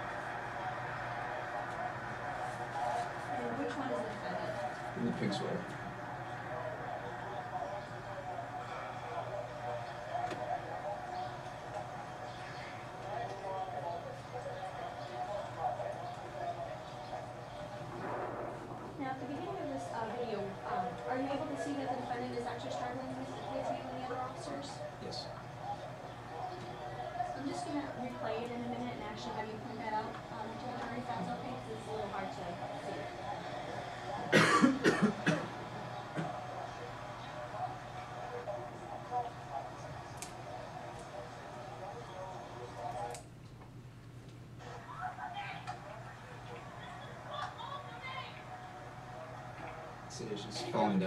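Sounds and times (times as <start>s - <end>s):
low room murmur: 0.0s - 51.0s
muffled voices over speakers: 0.0s - 51.0s
low hum: 16.4s - 21.1s
person coughing: 34.3s - 35.5s.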